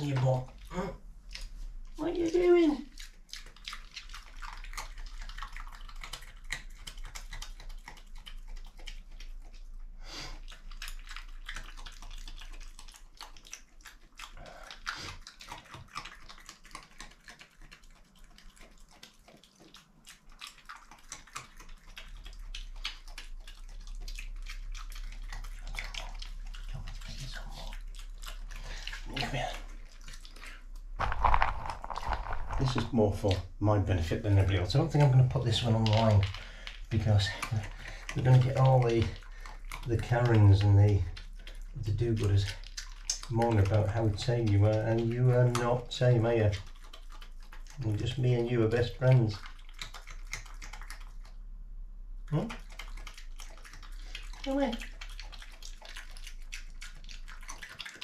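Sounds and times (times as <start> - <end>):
badger crunching and chewing: 0.0 - 51.6, 52.3 - 58.0.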